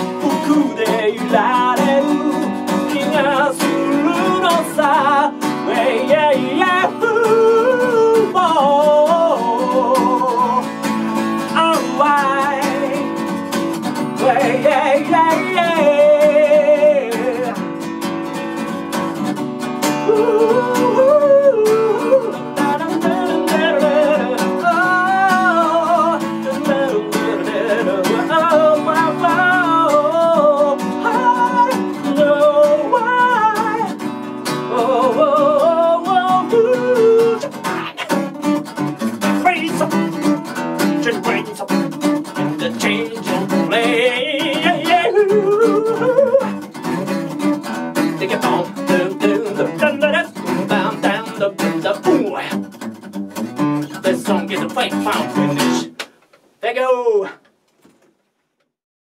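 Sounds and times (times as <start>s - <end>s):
man singing: 0.0s - 17.8s, 20.0s - 52.7s, 53.8s - 56.0s
acoustic guitar: 0.0s - 58.8s.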